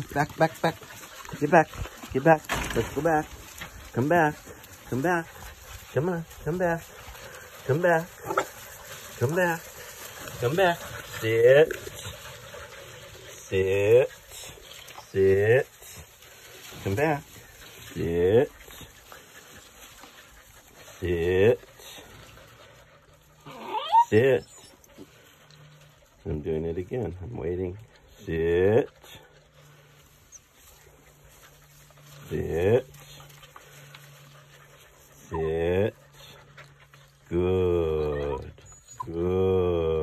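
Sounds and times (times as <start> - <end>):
paws scuffing on wood shavings: 0.0 - 13.4, 14.1 - 23.8, 29.2 - 37.3
puppies panting: 0.0 - 39.4.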